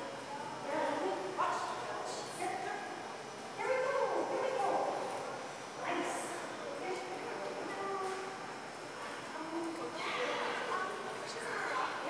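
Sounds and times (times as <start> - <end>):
people talking: 0.0 - 8.4, 9.0 - 12.0.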